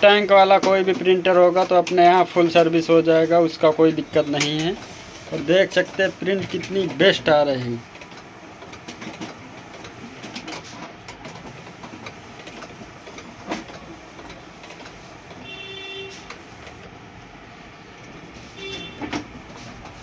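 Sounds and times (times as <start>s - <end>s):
printer clicks: 0.0s - 17.3s, 18.0s - 20.0s
inkjet printer mechanism running: 0.0s - 20.0s
printer motor whine: 0.0s - 20.0s.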